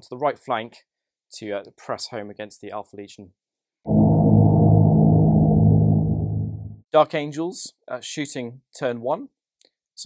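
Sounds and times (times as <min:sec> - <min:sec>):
deep low transition effect: 0:03.9 - 0:06.8.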